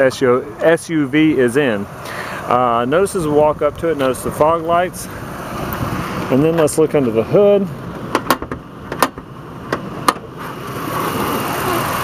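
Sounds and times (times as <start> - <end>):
car hood latch clicks: 8.1 - 10.3.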